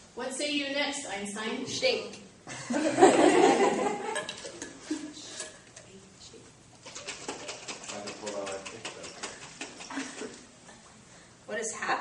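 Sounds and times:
liquid sloshing in shaken jar: 6.8 - 10.5.

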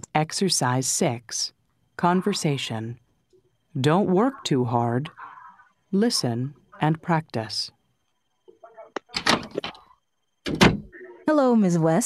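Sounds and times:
door creak: 9.0 - 10.9
door swinging: 9.1 - 9.8, 10.4 - 10.9.

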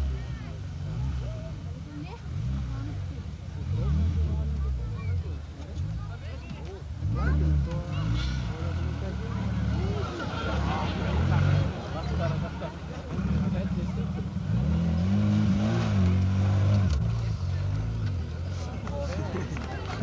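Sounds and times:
buggy engine revving hard: 0.0 - 6.2, 6.9 - 20.0
spectators chattering: 0.0 - 20.0.

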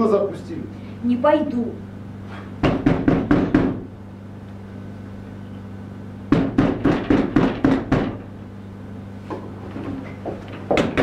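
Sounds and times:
loud knocking on a door: 2.6 - 3.9, 6.3 - 8.2, 10.7 - 11.0.

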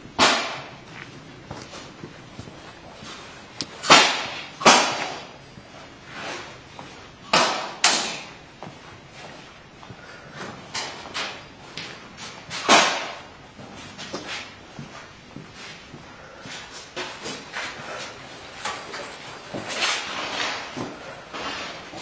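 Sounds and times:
gas guns firing in echoing hall: 0.0 - 0.9, 3.8 - 5.4, 7.2 - 8.4, 12.5 - 13.4.

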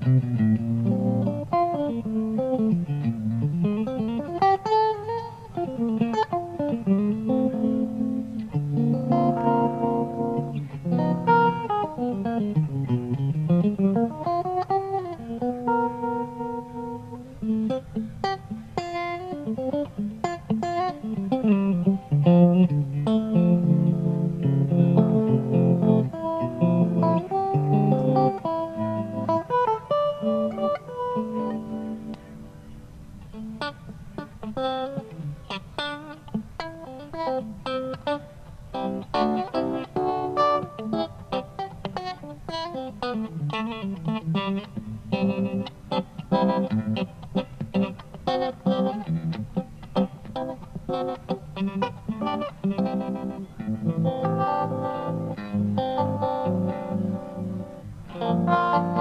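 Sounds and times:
electric guitar with tremolo: 0.0 - 59.0.

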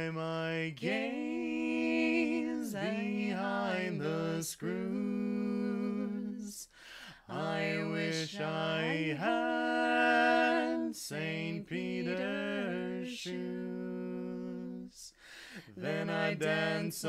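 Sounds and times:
two voices singing in harmony: 0.0 - 17.0
singers breathing: 6.6 - 7.3, 15.1 - 15.8.

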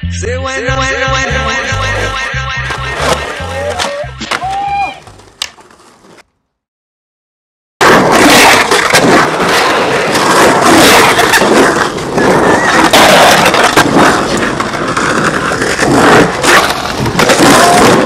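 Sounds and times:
skateboard wheels rolling on concrete: 1.9 - 6.4, 7.8 - 18.0
skateboard scraping concrete ledge: 2.6 - 6.2, 7.8 - 18.0.

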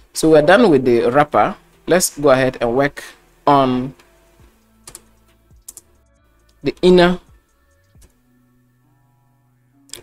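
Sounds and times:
computer keyboard key clicks: 4.9 - 5.9.

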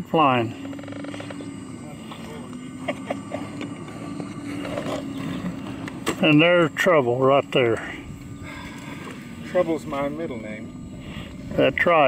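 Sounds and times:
model airplane engine drone: 0.0 - 12.0.

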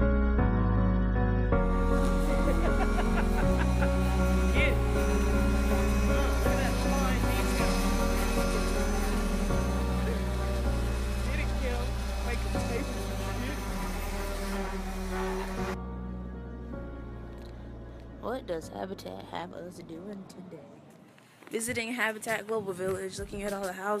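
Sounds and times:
background music with low chords: 0.0 - 20.8.

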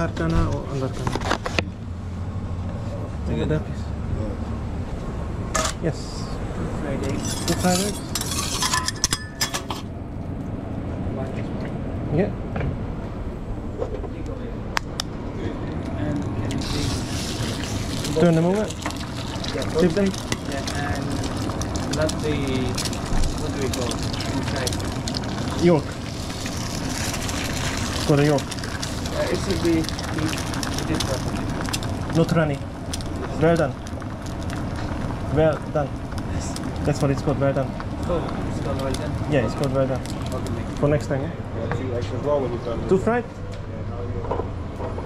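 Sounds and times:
metal spatula scraping griddle: 7.1 - 9.3
eggs sizzling on a griddle: 16.5 - 40.9.

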